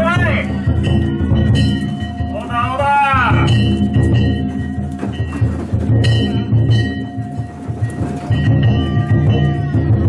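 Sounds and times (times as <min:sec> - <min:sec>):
large taiko drum beating: 0:00.0 - 0:10.0.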